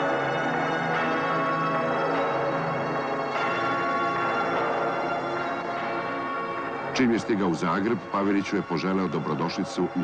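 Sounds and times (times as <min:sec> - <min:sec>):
church bells ringing: 0:00.0 - 0:10.0.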